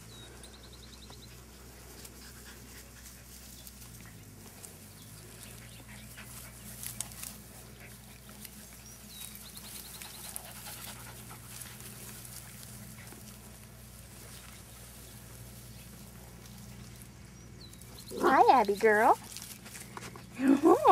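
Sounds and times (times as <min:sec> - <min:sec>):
faint low hum: 0:00.0 - 0:20.9
puppies scuffling and clicking: 0:01.0 - 0:20.9
dog panting: 0:01.2 - 0:04.4, 0:05.2 - 0:13.6.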